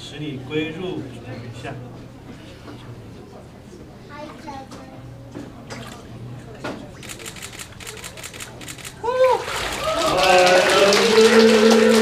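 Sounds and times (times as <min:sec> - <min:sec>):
water splashing and sloshing: 0:09.4 - 0:09.9.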